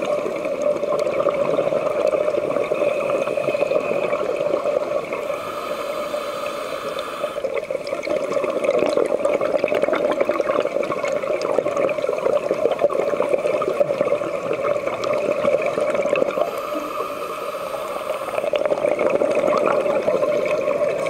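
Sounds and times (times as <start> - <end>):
fine underwater crackling: 0.0 - 21.0
underwater rush of water: 0.0 - 21.0.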